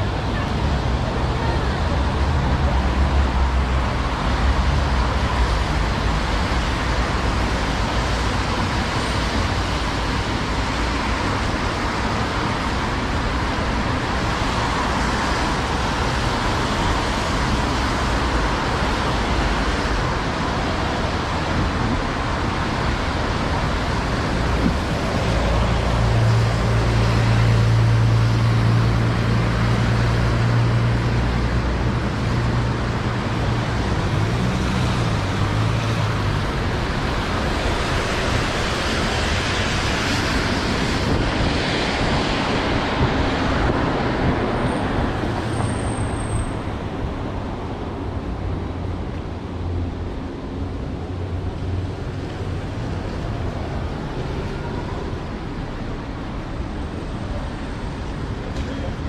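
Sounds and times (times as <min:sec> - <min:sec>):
tyres hissing on wet road: 0:00.9 - 0:49.0.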